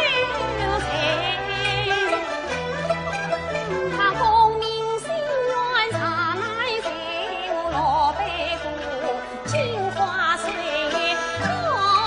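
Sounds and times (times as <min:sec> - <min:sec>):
woman singing opera aria: 0:00.0 - 0:02.3, 0:03.9 - 0:12.0
string accompaniment: 0:00.0 - 0:12.0.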